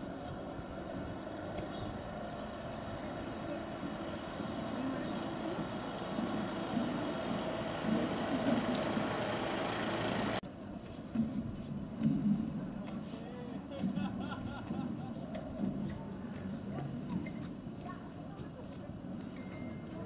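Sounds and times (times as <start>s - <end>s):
road traffic noise: 0.0s - 20.0s.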